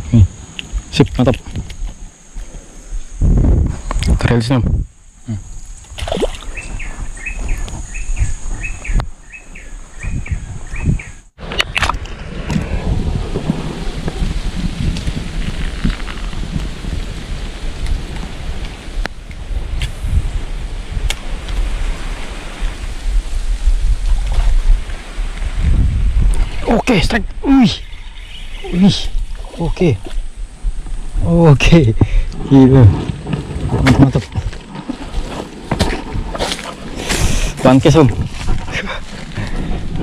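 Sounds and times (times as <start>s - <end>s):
continuous rushing with low rumble: 28.7s - 40.0s.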